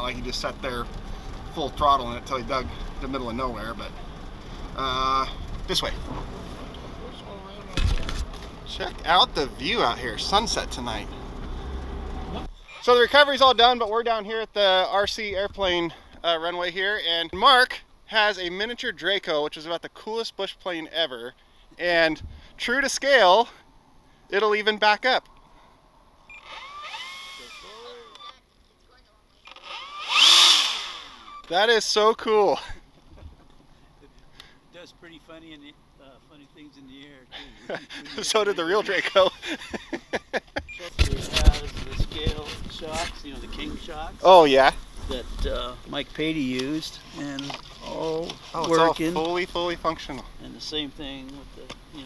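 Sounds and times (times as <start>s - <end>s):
vehicle rumble on dirt track: 0.0s - 14.0s, 36.4s - 52.0s
electric motor and propeller whining: 26.3s - 28.4s, 29.4s - 31.5s.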